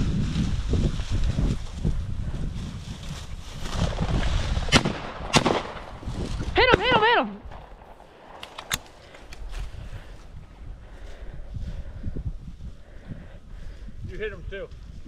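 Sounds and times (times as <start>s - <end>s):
footsteps through dry grass: 0.0s - 4.8s, 5.4s - 15.0s
shotgun shots: 4.7s - 5.9s.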